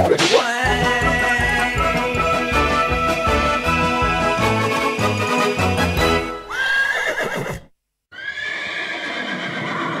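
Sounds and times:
horse whinny: 6.4 - 10.0.

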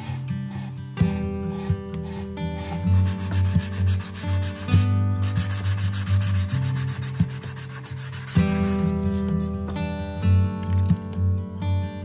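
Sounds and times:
sanding block rubbing filler: 0.0 - 10.1.

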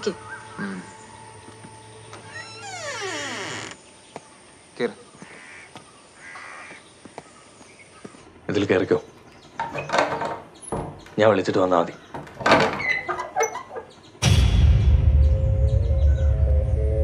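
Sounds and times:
crow cawing: 5.2 - 6.8.

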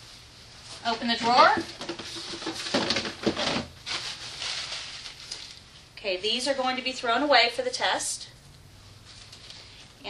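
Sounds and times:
plastic basin knocking and scraping: 1.0 - 3.8.

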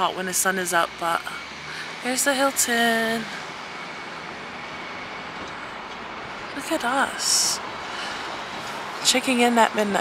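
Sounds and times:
car road noise from inside: 0.0 - 10.0.

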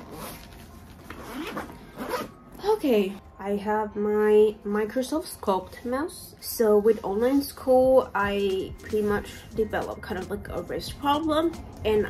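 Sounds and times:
backpack zipper pulled open: 0.0 - 0.5, 1.1 - 2.4.

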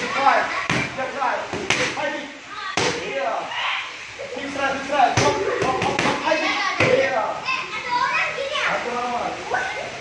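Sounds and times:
children calling out and chattering: 0.0 - 1.2, 2.2 - 10.0.

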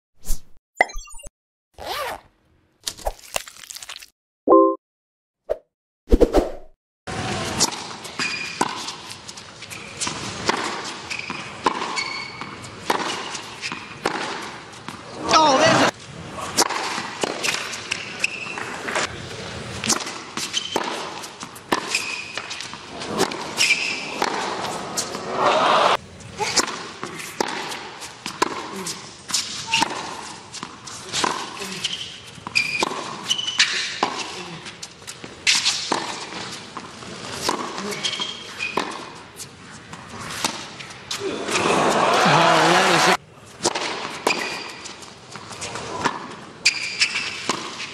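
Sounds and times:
shoe squeaks: 0.3 - 2.3, 8.2 - 8.6, 11.0 - 13.8, 18.0 - 18.7, 20.4 - 20.9, 21.8 - 22.6, 23.6 - 24.2, 31.6 - 34.5, 37.8 - 39.0, 44.2 - 45.0, 46.6 - 47.9
racket striking tennis ball: 35.5 - 37.8, 43.6 - 44.8
crowd or vocal burst: 41.4 - 43.2.

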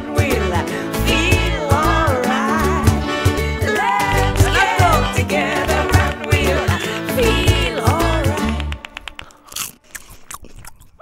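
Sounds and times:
crisp snack crunching: 9.0 - 11.0.

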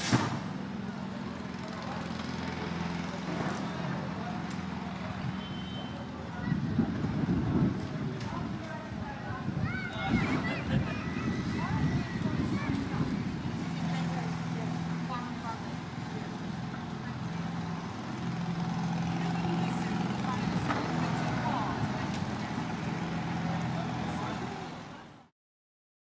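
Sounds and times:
traffic noise: 0.0 - 25.3
vehicle engine humming: 0.0 - 25.3.

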